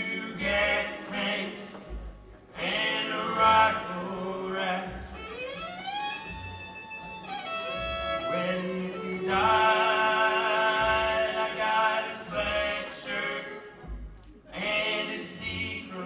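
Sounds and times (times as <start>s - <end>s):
bluegrass string band playing: 0.0s - 16.0s.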